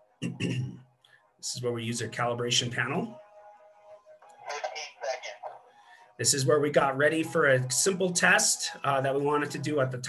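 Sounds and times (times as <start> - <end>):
faint speech through speaker: 0.2 - 0.8, 4.4 - 5.6
nearby voice: 0.2 - 0.8, 4.5 - 5.6.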